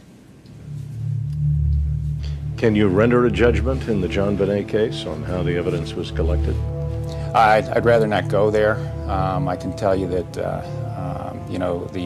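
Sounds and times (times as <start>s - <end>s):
low music drone: 0.4s - 12.0s.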